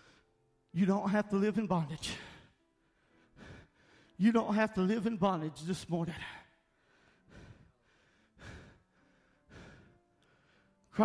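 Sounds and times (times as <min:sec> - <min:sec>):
man breathing heavily into microphone: 0:00.0 - 0:00.4, 0:02.2 - 0:04.2, 0:06.2 - 0:11.0.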